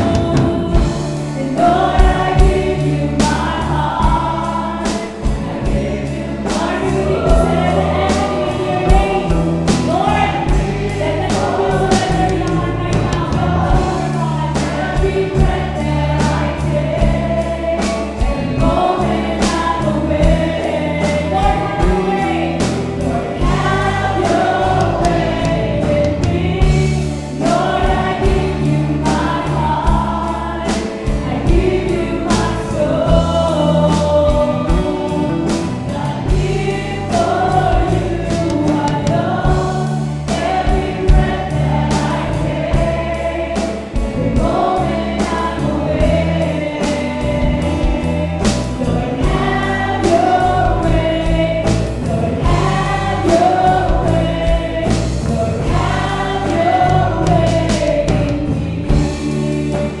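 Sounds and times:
drum kit beat: 0:00.0 - 1:00.0
electric bass: 0:00.0 - 1:00.0
guitars: 0:00.0 - 1:00.0
keyboard: 0:00.0 - 1:00.0
women singing: 0:00.0 - 1:00.0.

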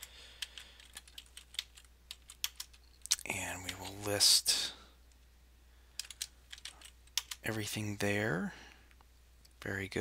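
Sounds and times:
faint keyboard keystrokes: 0:06.0 - 0:07.4.

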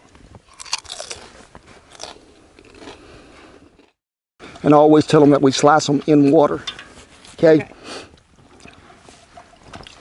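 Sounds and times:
person crunching potato chip: 0:00.5 - 0:03.0.

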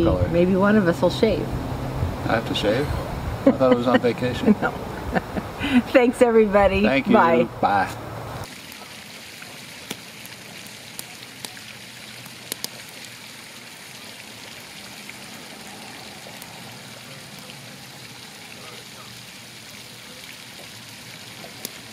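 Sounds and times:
logs burning with soft hiss: 0:04.9 - 0:21.9
fire crackling pops: 0:09.8 - 0:11.6, 0:12.2 - 0:13.0.

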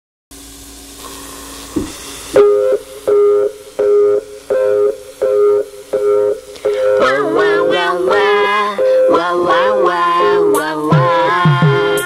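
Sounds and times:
hiss: 0:00.3 - 0:12.0
soft thud: 0:01.8 - 0:02.0
two-note synth chord: 0:02.4 - 0:11.1.

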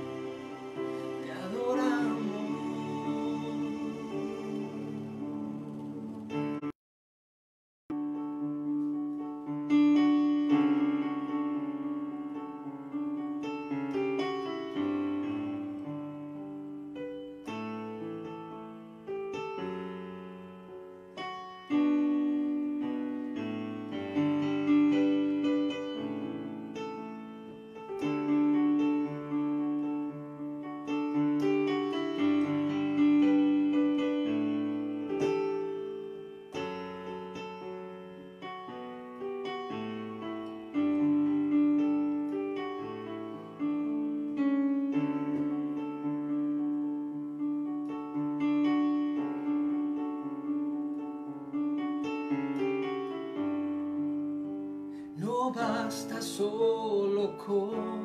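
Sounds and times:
keyboard playing slow piano chords: 0:00.0 - 0:06.8, 0:07.9 - 0:58.0.

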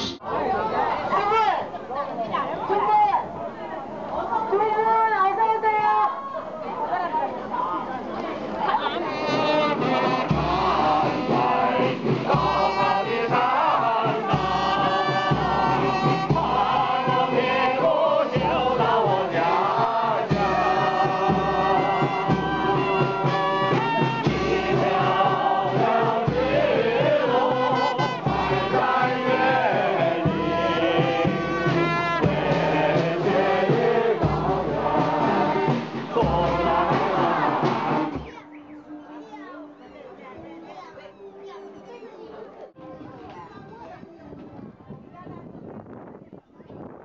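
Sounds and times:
large group singing in chorus: 0:09.2 - 0:38.3.

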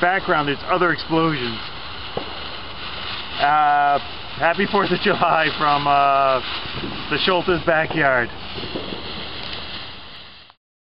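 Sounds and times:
firework spraying sparks hissing: 0:00.0 - 0:10.6.

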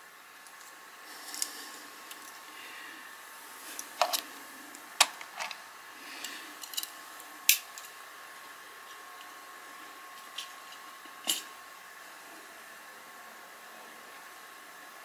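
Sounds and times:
faint motor hum: 0:00.0 - 0:15.0.

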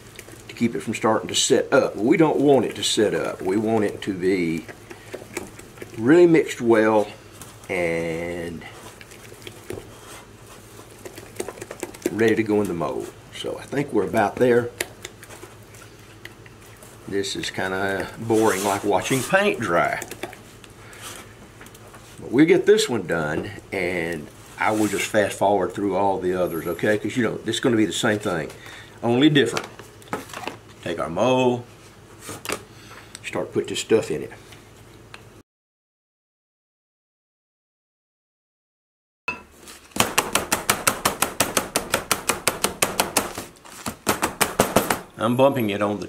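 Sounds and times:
spoon scraping plaster mix: 0:00.0 - 0:25.6.

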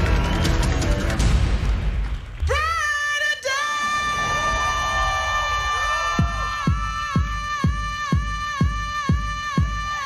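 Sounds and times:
dance music: 0:04.5 - 0:10.0.

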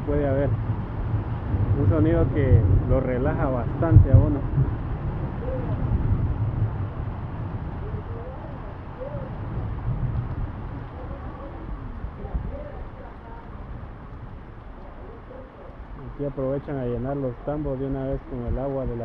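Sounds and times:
heavy rain on a metal roof: 0:00.0 - 0:19.0
faint distant voices: 0:07.7 - 0:09.5, 0:10.8 - 0:19.0.

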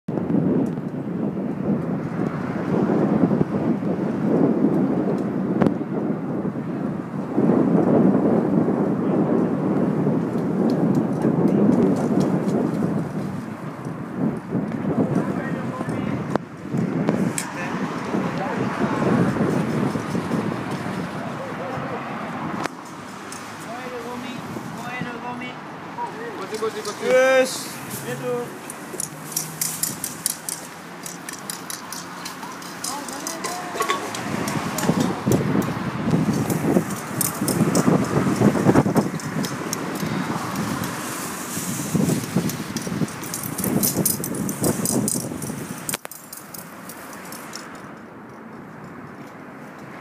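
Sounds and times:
wind buffeting microphone: 0:00.1 - 0:50.0
people talking: 0:15.0 - 0:16.2, 0:21.2 - 0:22.1, 0:23.6 - 0:28.6, 0:32.8 - 0:35.2.

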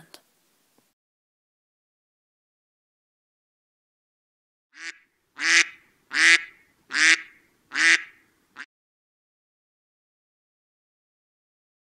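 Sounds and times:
cartoon duck calls: 0:04.8 - 0:08.7.

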